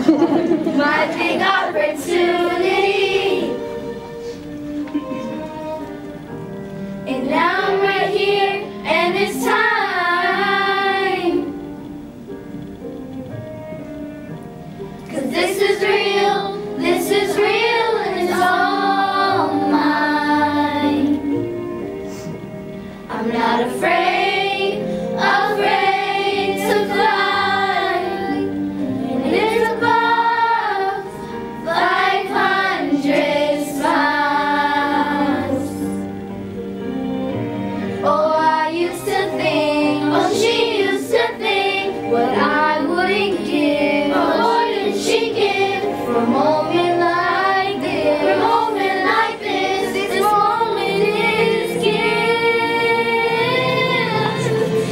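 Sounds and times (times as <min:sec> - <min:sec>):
girls singing pop song: 0:00.0 - 0:04.6, 0:07.0 - 0:11.8, 0:15.1 - 0:22.3, 0:23.0 - 0:36.2, 0:38.0 - 0:54.9
backing track: 0:00.0 - 0:54.9.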